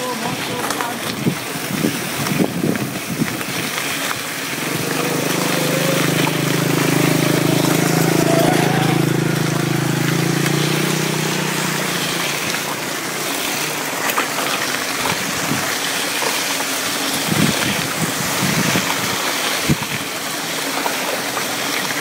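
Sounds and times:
bicycle rolling over dirt: 0:00.0 - 0:22.0
wind on microphone: 0:01.0 - 0:10.2, 0:15.0 - 0:15.8, 0:17.2 - 0:20.1
motorcycle engine passing by: 0:04.4 - 0:15.8.

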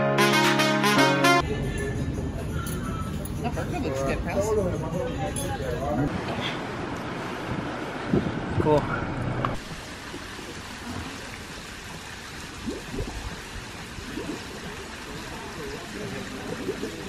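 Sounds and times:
restaurant voices: 0:01.4 - 0:06.8
running water: 0:09.6 - 0:17.0.

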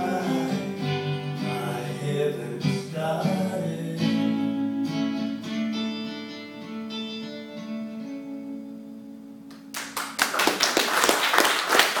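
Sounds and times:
audience clapping: 0:09.5 - 0:12.0.

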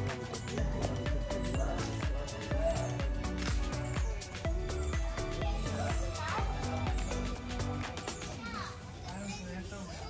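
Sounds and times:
music with steady beat: 0:00.0 - 0:08.5
children's voices: 0:03.5 - 0:10.0.

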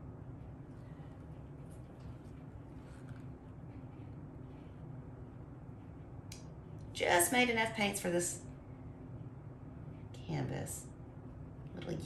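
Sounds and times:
low steady hum: 0:00.0 - 0:12.0
soft handling sounds: 0:00.5 - 0:04.9.

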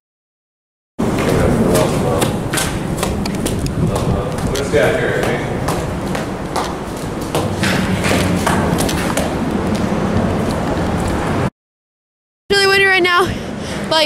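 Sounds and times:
footsteps on stone stairs: 0:01.0 - 0:11.5
wind buffeting microphone: 0:01.0 - 0:11.5.

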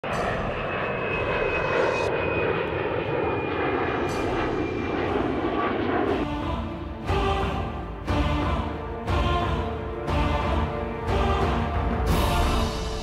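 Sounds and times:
high engine whine: 0:00.0 - 0:13.0
jet engines running: 0:00.0 - 0:13.0.

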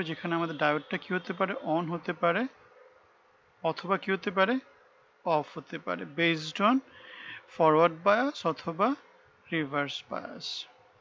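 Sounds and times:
man speaking: 0:00.0 - 0:02.6, 0:03.6 - 0:04.7, 0:05.3 - 0:06.9, 0:07.5 - 0:10.8
faint steady hum: 0:00.0 - 0:11.0.

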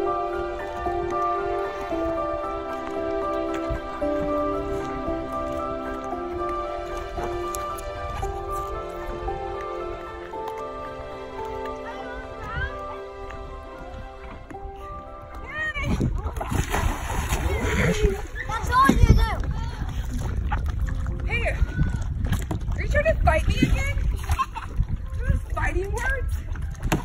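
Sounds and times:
background music with held notes: 0:00.0 - 0:18.9
water sloshing and splashing: 0:00.0 - 0:27.0.

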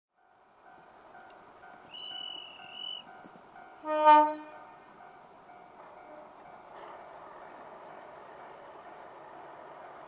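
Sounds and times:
high steady tone: 0:00.6 - 0:06.6
locomotive horn: 0:03.8 - 0:04.7.

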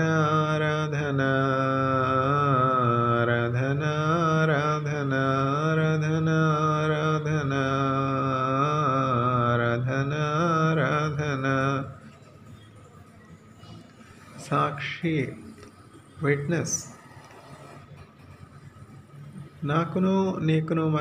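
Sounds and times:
man singing unaccompanied: 0:00.0 - 0:12.2, 0:19.6 - 0:21.0.

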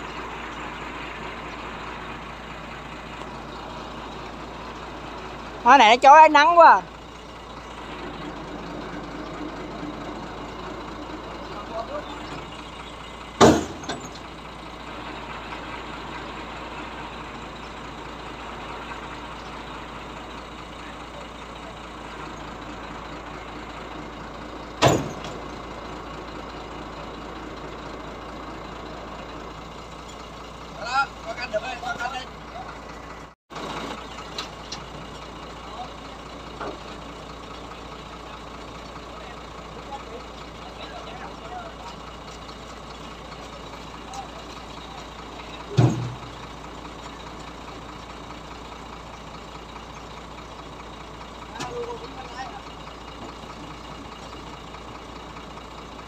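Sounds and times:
truck engine running: 0:00.0 - 0:56.0
voices: 0:00.0 - 0:56.0
sharp knocks: 0:13.4 - 0:14.0.

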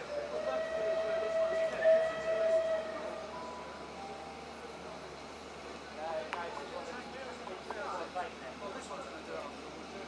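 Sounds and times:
steam locomotive whistle blast: 0:00.0 - 0:03.7.

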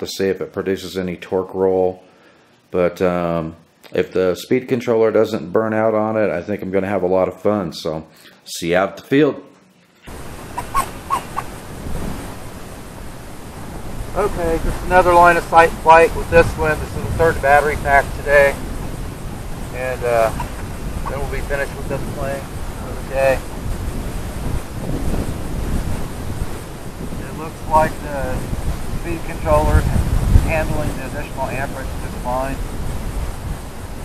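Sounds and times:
wind buffeting microphone: 0:10.1 - 0:34.0.

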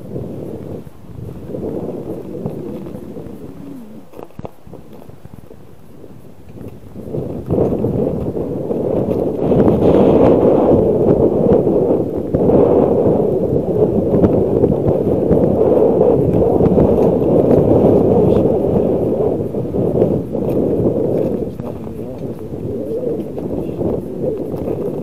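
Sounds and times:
bicycle tyres rumbling on ice: 0:00.0 - 0:25.0
wind on microphone: 0:00.0 - 0:25.0.

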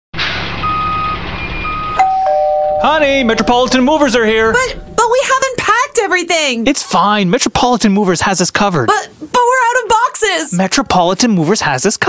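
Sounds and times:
truck engine: 0:00.2 - 0:06.7
truck reversing alarm beeping: 0:00.4 - 0:05.8.

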